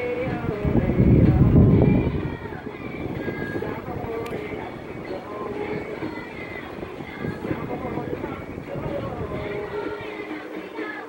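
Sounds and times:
low rumble: 0.0 - 10.0
television speech: 0.0 - 11.0.

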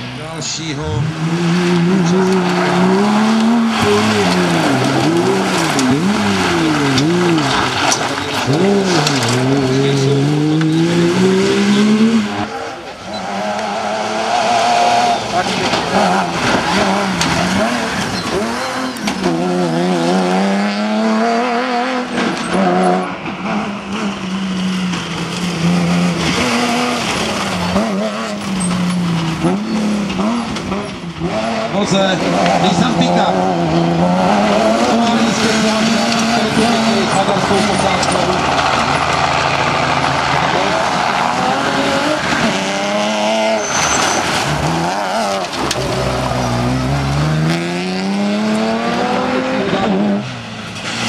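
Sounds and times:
rally car engines revving: 0.0 - 51.0.

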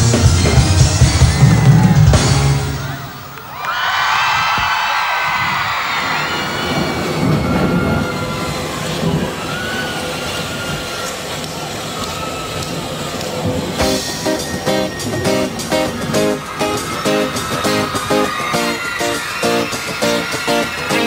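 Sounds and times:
crowd cheering and screaming: 0.0 - 21.0.

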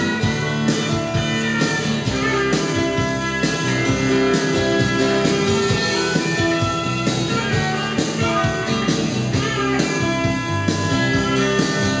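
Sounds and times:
rock guitars playing: 0.0 - 12.0
steady drum beat: 0.0 - 12.0.

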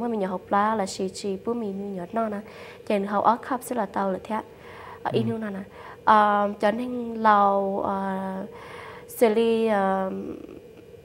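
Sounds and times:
woman speaking drawn-out syllable: 5.1 - 8.4.

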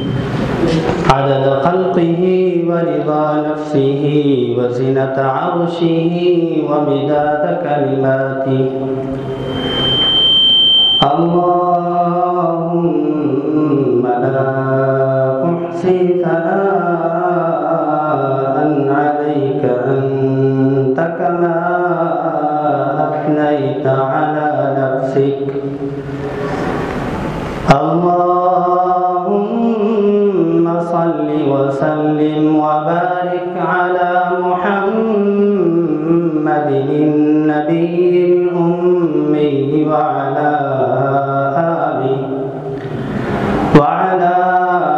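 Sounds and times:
high ringing tone: 0.0 - 0.6, 8.5 - 11.6
man chanting: 0.0 - 9.6, 11.0 - 26.4, 27.6 - 44.9.

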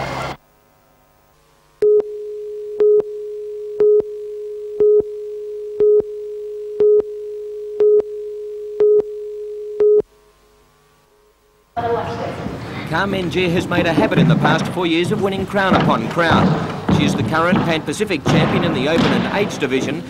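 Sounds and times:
steady line-up tone: 0.6 - 20.0
short countdown beeps: 1.8 - 4.2, 4.8 - 7.1, 7.8 - 8.1, 8.8 - 10.0.

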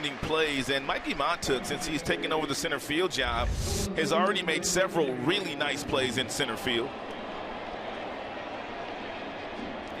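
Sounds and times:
murmur of ballpark crowd: 0.0 - 10.0.

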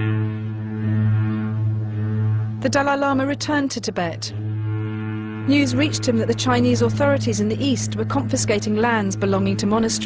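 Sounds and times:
low droning note: 0.0 - 10.0.

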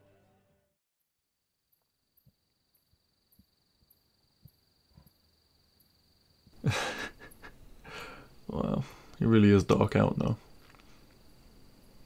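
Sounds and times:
high insect trill: 1.5 - 12.0
man sighing: 6.6 - 9.2.

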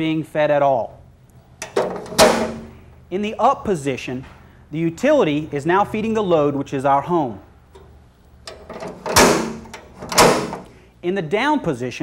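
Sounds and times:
switch handle rattle: 1.6 - 2.8, 8.5 - 10.7.

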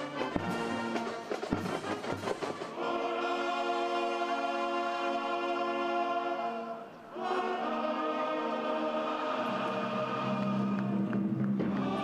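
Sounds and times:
brass band sustained chord: 0.0 - 11.1.

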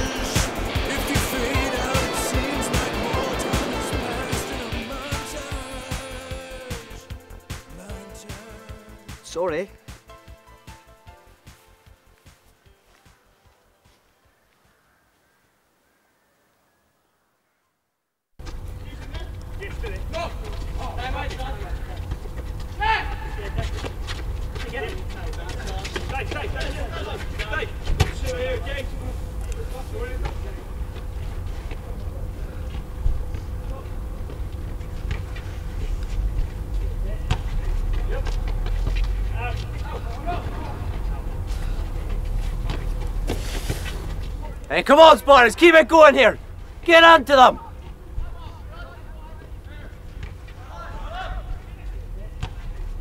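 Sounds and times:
distant players shouting: 0.0 - 7.1, 18.6 - 43.3, 44.1 - 53.0.

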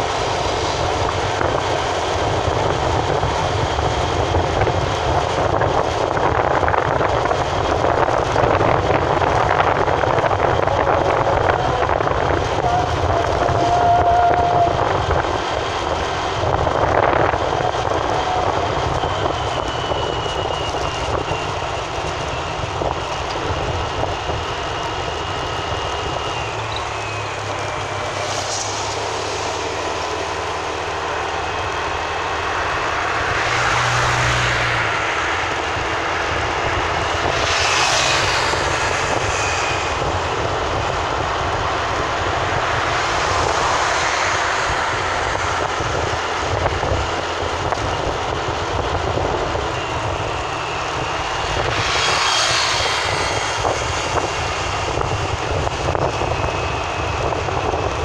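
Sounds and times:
vehicle engine and tyre noise: 0.0 - 58.0.

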